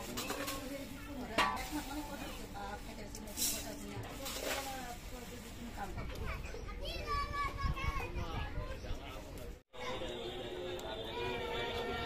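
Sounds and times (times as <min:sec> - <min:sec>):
children calling and chattering: 0:00.0 - 0:02.8, 0:05.8 - 0:12.0.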